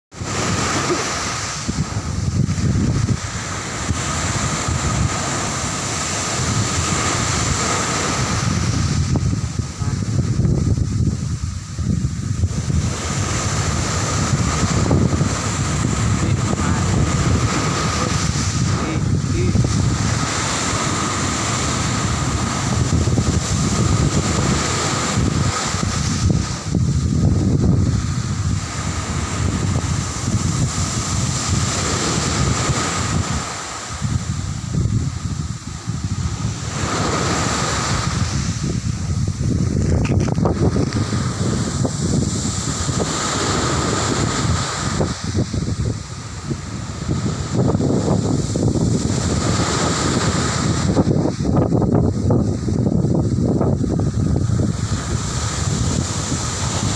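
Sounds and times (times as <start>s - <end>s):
surf washing up a beach: 0.1s - 56.9s
wind buffeting microphone: 0.1s - 56.9s.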